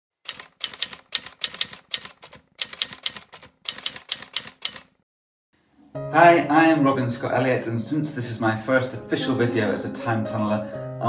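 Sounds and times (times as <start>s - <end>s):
keyboard keys typing: 0.3s - 4.9s.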